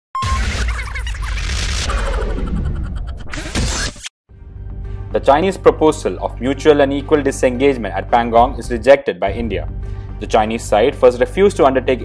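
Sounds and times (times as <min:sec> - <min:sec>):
intro music: 0:04.3 - 0:12.0.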